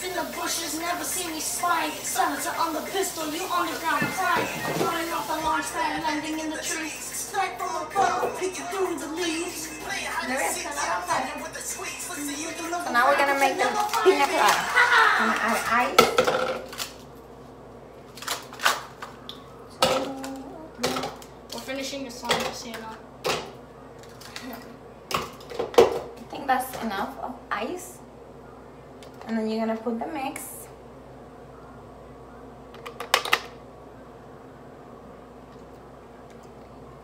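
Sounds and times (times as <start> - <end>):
low room hum: 0.0 - 37.0.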